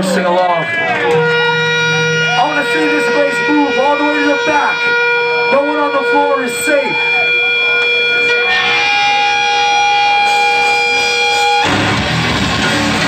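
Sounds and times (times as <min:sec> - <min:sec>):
electric guitar ringing notes: 0:00.0 - 0:13.0
loud distorted band: 0:00.0 - 0:13.0.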